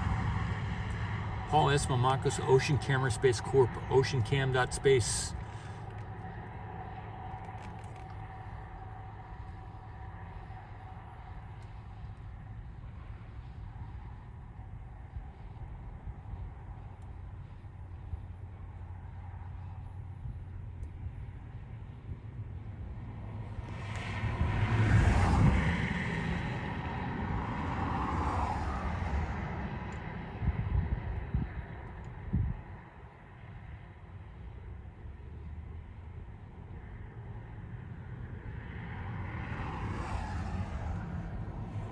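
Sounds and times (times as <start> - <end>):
faint whine: 0.0 - 24.5
car engine rumble: 0.0 - 41.9
road noise: 0.0 - 41.9
vehicle passing close by: 22.9 - 31.5, 38.4 - 41.9.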